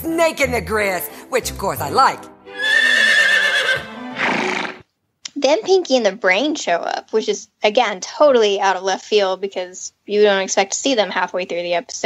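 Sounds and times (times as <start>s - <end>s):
soundtrack music: 0.0s - 2.6s
cartoon horse whinnying: 2.5s - 4.8s.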